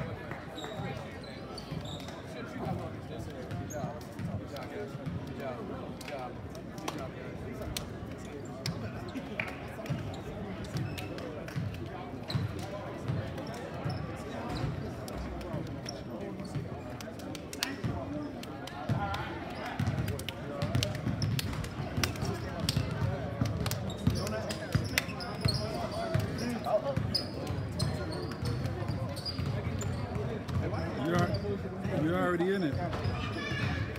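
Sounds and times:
chatter of voices: 0:00.0 - 0:33.9.

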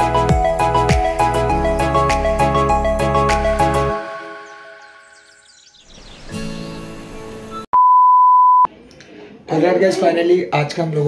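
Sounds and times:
background music: 0:00.0 - 0:07.7
electronic beep: 0:07.8 - 0:08.7.

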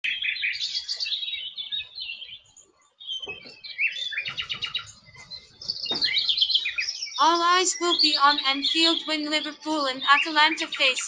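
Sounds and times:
birds chirping and trilling: 0:00.0 - 0:11.0.

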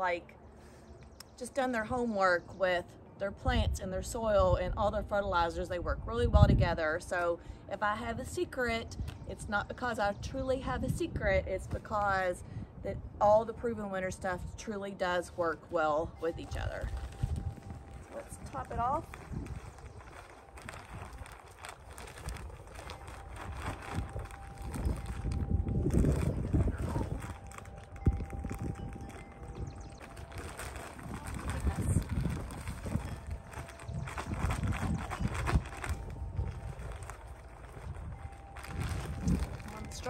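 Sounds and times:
plastic bag crinkling: 0:16.3 - 0:40.0.

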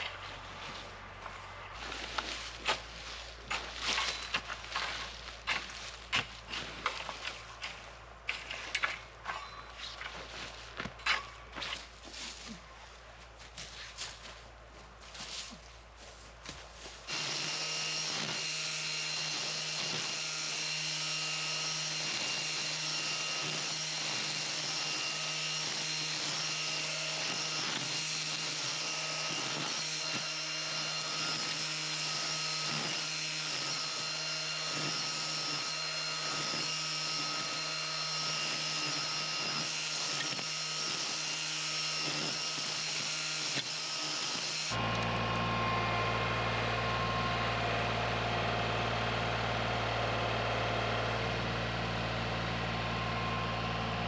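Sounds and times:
rake scraping wood-chip mulch: 0:00.0 - 0:14.4, 0:15.1 - 0:54.0
string trimmer cutting grass: 0:01.7 - 0:12.6, 0:17.0 - 0:54.0.

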